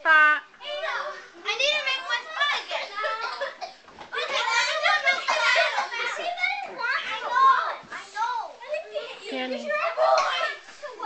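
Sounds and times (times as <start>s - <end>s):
children shouting and squealing: 0.6s - 11.0s.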